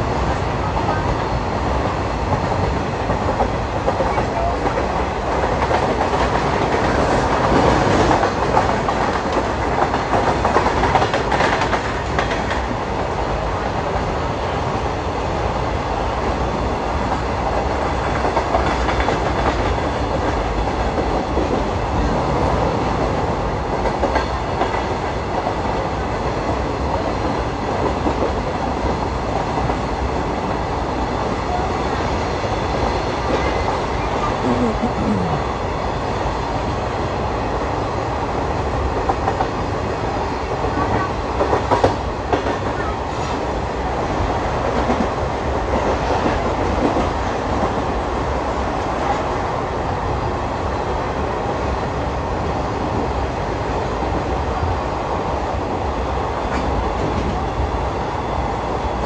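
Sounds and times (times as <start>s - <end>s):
train wheels on rails: 0.0s - 59.0s.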